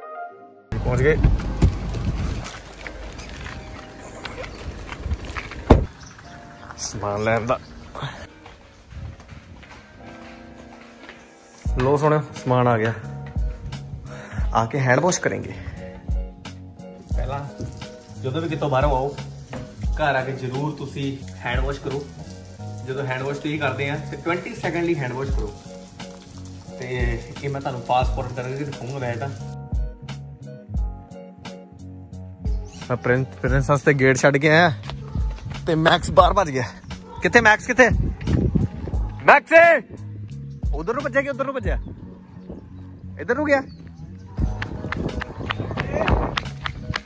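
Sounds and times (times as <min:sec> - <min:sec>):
background music: 0:00.0 - 0:47.0
car door opening: 0:05.6 - 0:06.0
water running from a tap: 0:16.4 - 0:29.6.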